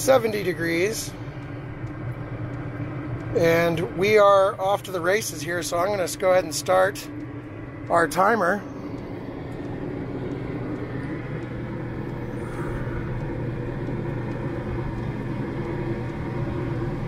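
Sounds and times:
air conditioner humming: 0.0 - 17.0.

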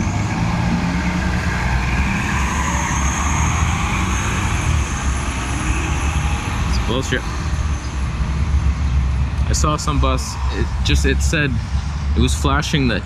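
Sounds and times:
bus engine rumbling: 0.0 - 13.0.

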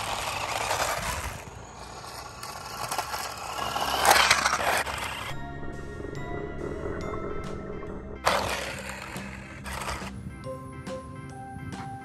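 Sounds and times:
toy car driving over asphalt: 0.0 - 5.4, 8.2 - 10.2.

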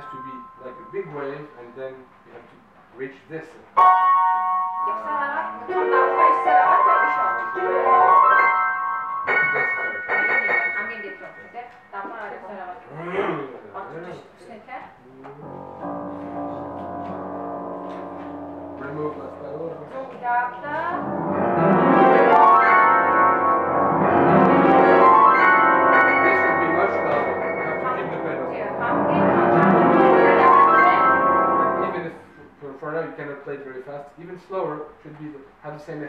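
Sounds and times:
acoustic piano chords: 0.0 - 2.2, 3.7 - 12.0, 15.4 - 32.4.

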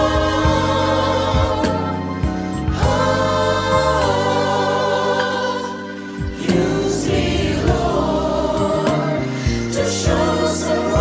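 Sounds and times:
mixed choir singing gospel: 0.0 - 11.0.

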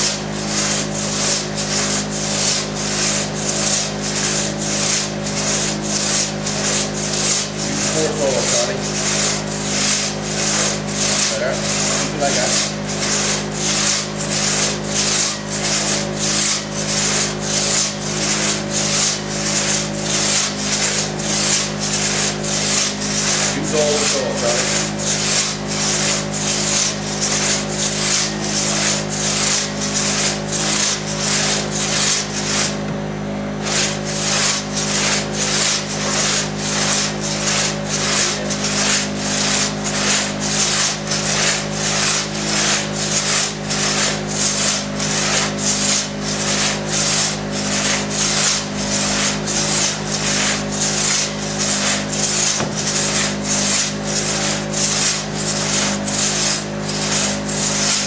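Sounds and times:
crosscut saw rasping through log: 0.0 - 58.0.

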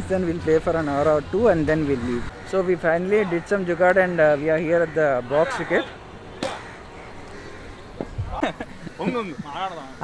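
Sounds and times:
faint outdoor background: 0.0 - 10.0
cricket bat striking ball: 6.4 - 6.6.

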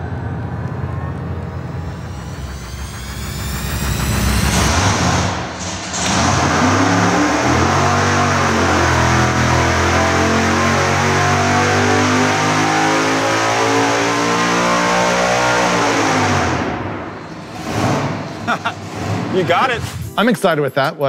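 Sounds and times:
supercharged engine revving at full throttle: 1.8 - 19.3.

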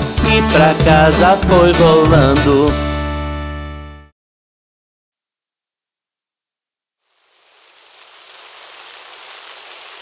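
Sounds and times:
steady falling rain: 7.0 - 10.0.

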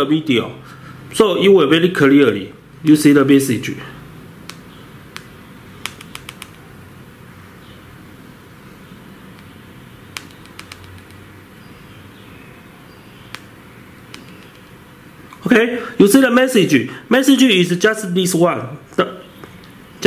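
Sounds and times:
steady background hiss: 0.0 - 20.0
tapping on phone keyboard: 4.5 - 6.6, 10.2 - 11.2, 14.1 - 14.7.

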